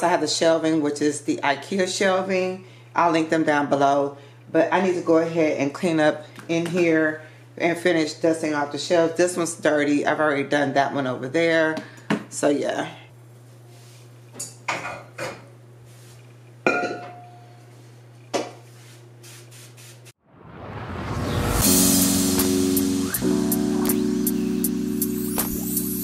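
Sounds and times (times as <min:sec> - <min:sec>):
background music with plucked guitar: 0:22.1 - 0:26.0.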